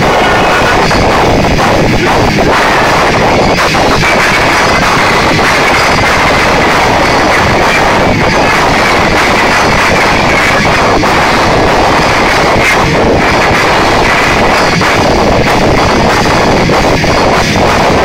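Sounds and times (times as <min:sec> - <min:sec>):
distorted rock band playing loud: 0:00.0 - 0:18.0
steady high tone: 0:00.0 - 0:18.0.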